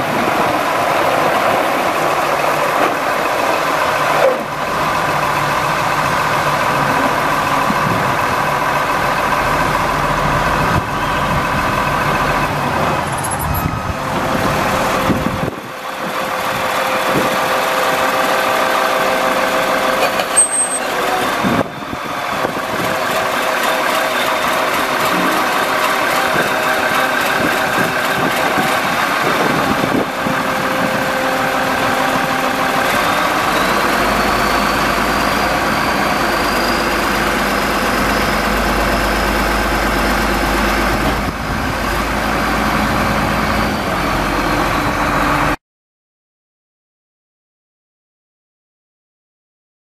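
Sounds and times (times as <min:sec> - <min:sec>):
diesel engine idling: 0:00.0 - 0:45.6.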